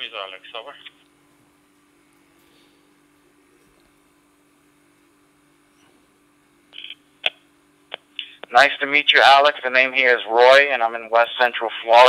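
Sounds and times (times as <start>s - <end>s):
faint radio hum: 0.0s - 12.0s.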